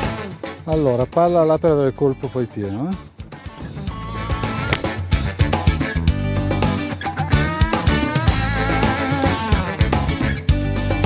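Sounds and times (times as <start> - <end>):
guitar-led music with drums: 0.0 - 1.0, 2.9 - 11.0.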